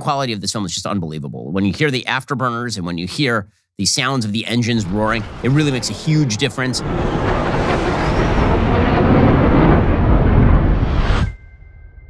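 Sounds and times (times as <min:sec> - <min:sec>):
fighter jet engines roaring: 0:04.6 - 0:11.3.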